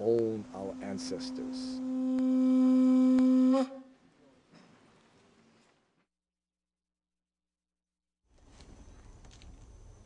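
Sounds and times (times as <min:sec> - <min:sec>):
conch shell trumpet note: 0:00.0 - 0:04.0.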